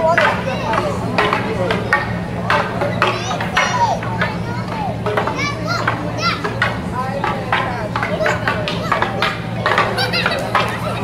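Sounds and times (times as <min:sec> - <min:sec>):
children calling out and chattering: 0:00.0 - 0:11.0
sharp knocks: 0:00.0 - 0:11.0
steady low hum: 0:00.0 - 0:11.0.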